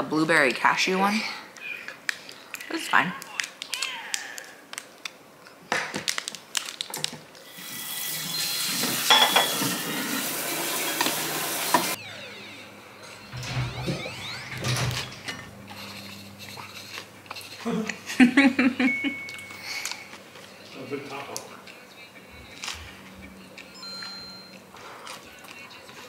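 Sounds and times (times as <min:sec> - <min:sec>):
kitchen clicks and crinkles: 0:01.8 - 0:07.5.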